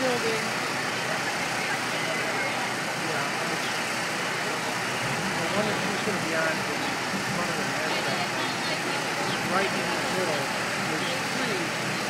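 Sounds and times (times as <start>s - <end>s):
indistinct crowd voices: 0.0s - 12.0s
traffic noise: 0.0s - 12.0s.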